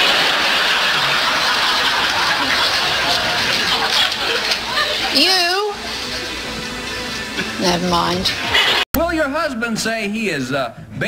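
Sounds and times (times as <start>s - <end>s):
audience laughing: 0.0s - 7.6s, 8.3s - 8.9s.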